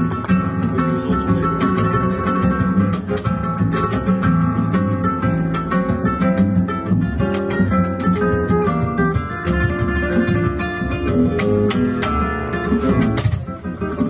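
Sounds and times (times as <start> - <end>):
solo flamenco guitar: 0.0 - 14.0.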